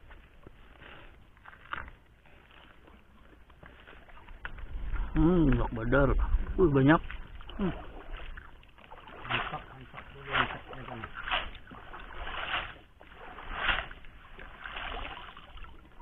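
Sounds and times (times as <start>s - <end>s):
cast net splashing in water: 7.1s - 16.0s.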